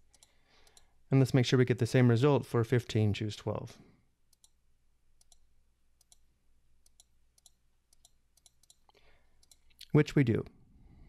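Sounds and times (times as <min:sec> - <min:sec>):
computer mouse clicks: 0:00.0 - 0:00.9, 0:04.3 - 0:04.6, 0:05.2 - 0:09.8.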